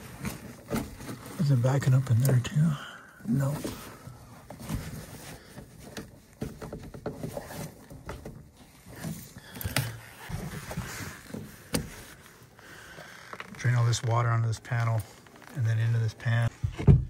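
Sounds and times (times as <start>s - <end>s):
hands knocking and rustling hoses: 4.5s - 12.2s.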